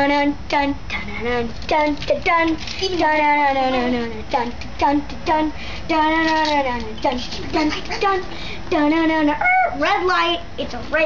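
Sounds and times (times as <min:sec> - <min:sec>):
child singing wordless tune: 0:00.0 - 0:11.0.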